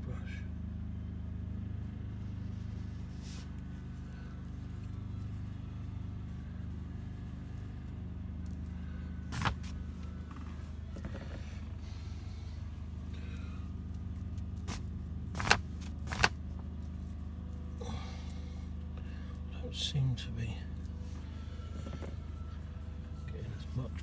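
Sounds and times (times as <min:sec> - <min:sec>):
low mechanical hum: 0:00.0 - 0:24.0.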